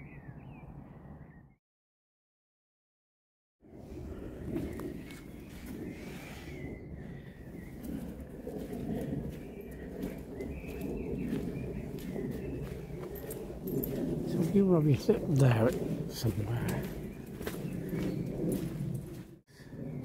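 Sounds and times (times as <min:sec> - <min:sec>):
faint birdsong: 0:00.0 - 0:01.6, 0:03.8 - 0:20.0
steady low rumble: 0:03.7 - 0:20.0
footsteps on earth path: 0:04.5 - 0:05.9, 0:07.7 - 0:19.4.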